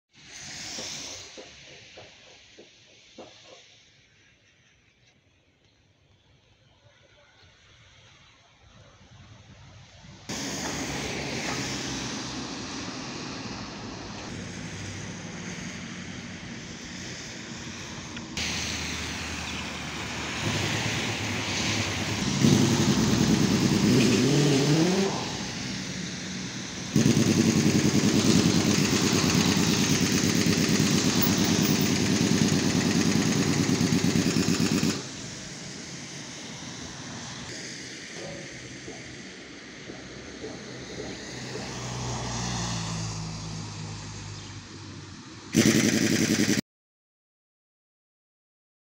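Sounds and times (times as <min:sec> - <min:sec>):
road traffic: 0:00.1 - 0:04.3, 0:07.6 - 0:46.6
loud steady engine: 0:00.2 - 0:03.3, 0:10.3 - 0:42.4, 0:44.4 - 0:46.6
engine revving: 0:10.3 - 0:35.4, 0:45.5 - 0:46.6.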